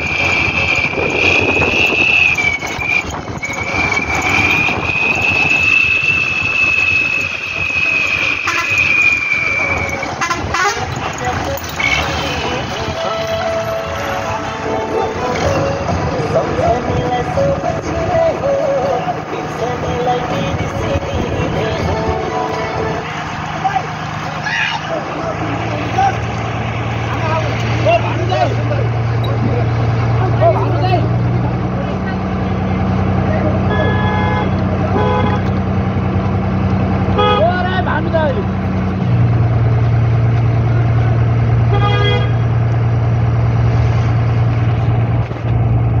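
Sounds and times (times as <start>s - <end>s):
horn short rapid toots: 0.0s - 11.0s
bus engine hum: 0.0s - 46.0s.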